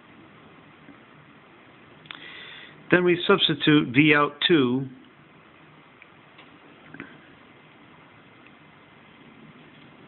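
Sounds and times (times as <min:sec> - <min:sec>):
room hiss: 0:00.0 - 0:10.0.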